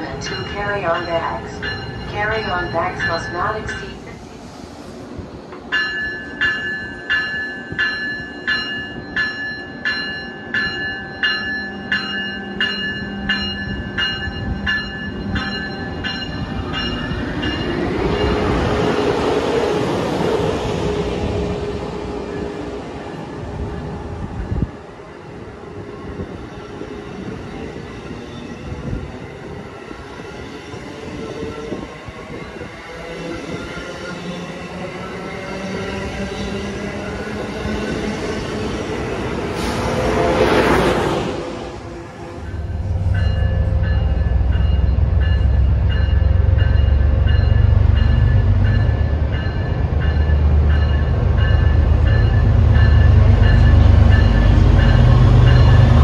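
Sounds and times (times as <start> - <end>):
train bell ringing: 0.0 - 4.2, 5.7 - 18.5, 42.4 - 56.0
train drive whine: 0.0 - 56.0
train wheels on rails: 0.0 - 56.0.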